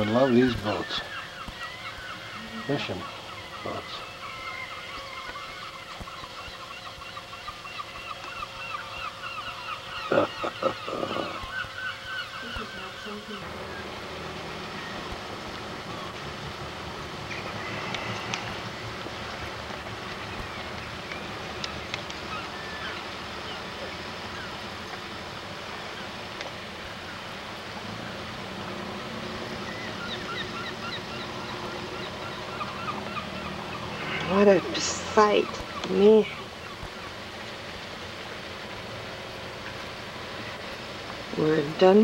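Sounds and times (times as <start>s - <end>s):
faint gull calls: 0.0s - 25.0s, 29.0s - 37.5s
outdoor background noise: 0.0s - 42.0s.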